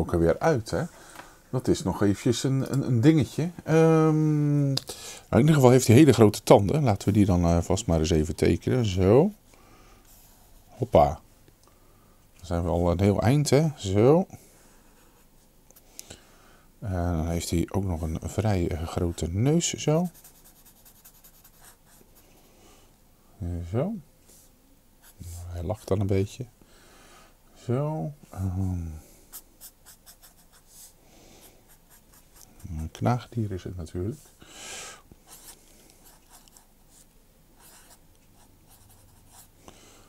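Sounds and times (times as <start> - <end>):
marker scribbling on paper: 20.0 - 22.0, 29.3 - 30.9, 35.3 - 39.5.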